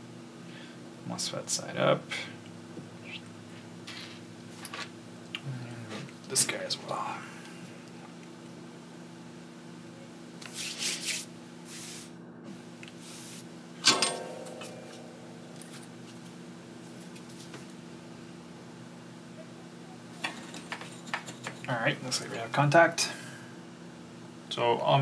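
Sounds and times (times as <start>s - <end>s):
steady low hum: 0.0s - 25.0s
sharp metallic clack: 13.8s - 15.2s
handling noises on workbench: 20.2s - 21.6s.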